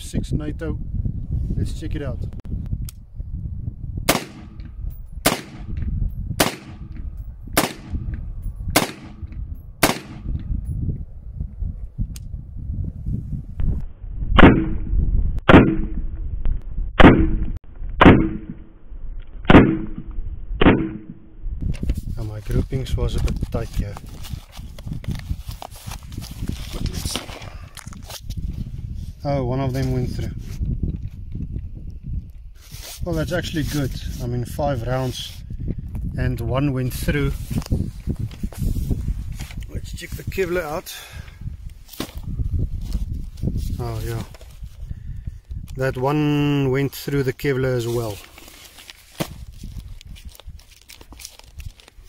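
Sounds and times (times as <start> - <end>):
camera handling noise: 23.2 - 28.5.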